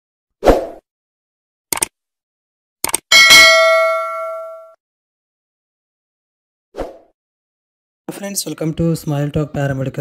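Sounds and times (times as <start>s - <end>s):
notification bell ding: 3.1s - 4.8s.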